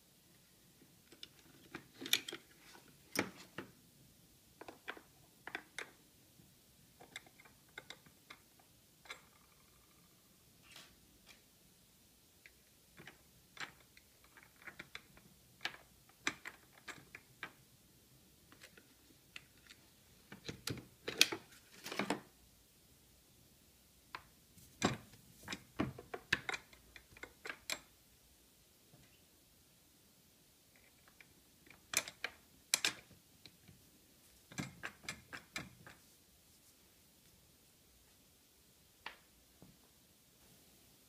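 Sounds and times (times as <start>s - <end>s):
plastic and metal clicks and clacks: 30.8s - 33.1s.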